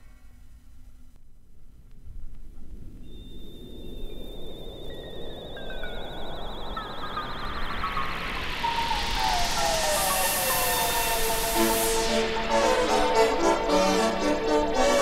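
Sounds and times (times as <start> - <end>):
hissing synthesizer noise: 2.8 - 15.0
high warbling tone: 3.1 - 15.0
downward gliding synth tones: 3.4 - 15.0.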